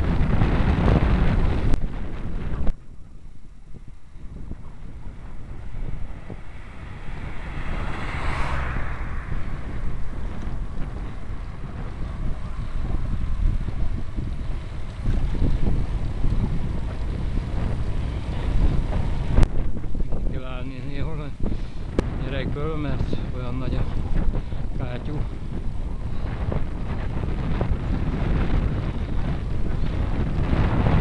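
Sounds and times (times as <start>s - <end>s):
steady low rumble: 0.0s - 31.0s
wind buffeting microphone: 0.0s - 31.0s
car passing: 3.3s - 31.0s.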